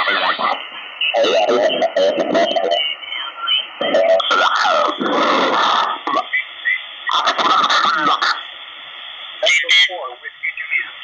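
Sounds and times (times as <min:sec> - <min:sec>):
noisy garbled radio signal: 0:00.0 - 0:11.0.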